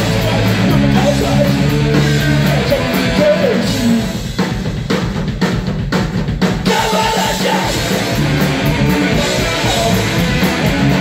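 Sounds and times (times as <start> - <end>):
electric guitar: 0.0 - 4.4, 6.7 - 11.0
bass guitar: 0.0 - 11.0
drum kit: 0.0 - 11.0.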